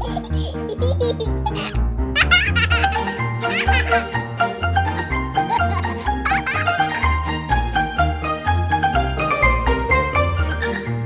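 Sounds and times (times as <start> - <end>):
child giggling: 0.0 - 4.2, 5.0 - 7.1
cheerful background music: 0.0 - 11.0.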